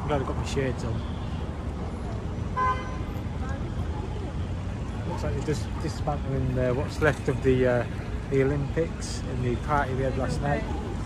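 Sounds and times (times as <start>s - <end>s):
city street traffic noise: 0.0s - 11.0s.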